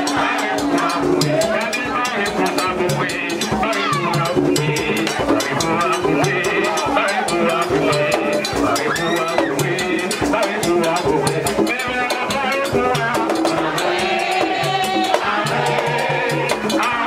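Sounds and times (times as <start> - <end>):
fast steady drumming: 0.0 - 17.0
voices singing: 0.0 - 17.0.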